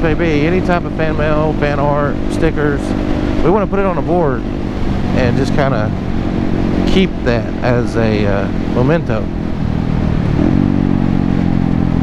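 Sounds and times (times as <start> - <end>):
motorcycle engine cruising: 0.0 - 12.0
wind and road noise: 0.0 - 12.0.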